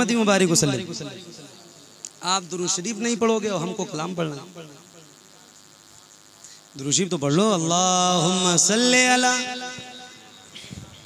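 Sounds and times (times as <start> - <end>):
man speaking over loudspeaker: 0.0 - 1.2
night insects buzzing: 0.0 - 11.0.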